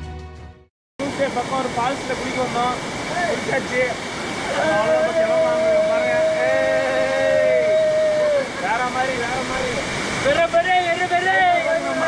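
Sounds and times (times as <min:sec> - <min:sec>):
waterfall rushing water: 0:01.0 - 0:12.0
people shouting: 0:04.4 - 0:08.6.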